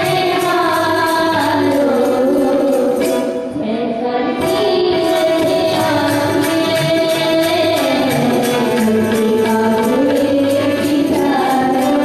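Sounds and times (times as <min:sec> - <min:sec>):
light percussion: 0:00.0 - 0:12.0.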